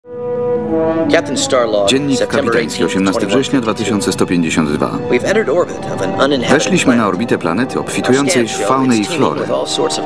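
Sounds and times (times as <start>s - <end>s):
sustained chord tone: 0.0s - 10.0s.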